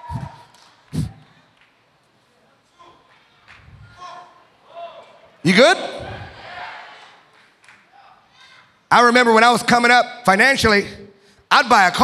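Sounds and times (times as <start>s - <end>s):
man speaking through microphone: 5.4s - 6.2s.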